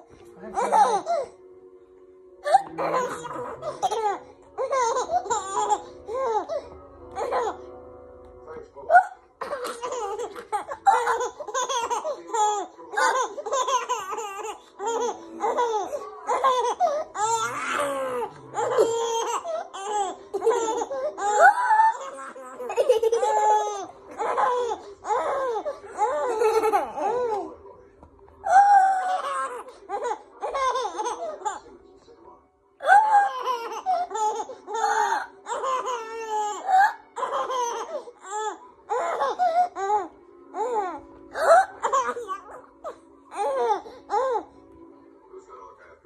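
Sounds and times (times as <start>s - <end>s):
baby laughing: 0.5s - 1.4s, 2.4s - 7.7s, 8.9s - 27.5s, 28.4s - 31.6s, 32.8s - 44.5s.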